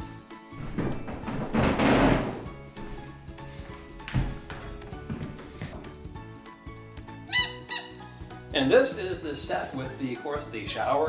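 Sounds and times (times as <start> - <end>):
rubber duck squeaks: 7.3 - 8.0.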